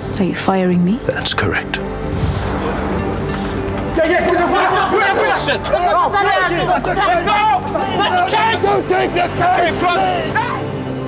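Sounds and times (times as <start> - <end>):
voices chattering: 3.3 - 10.8.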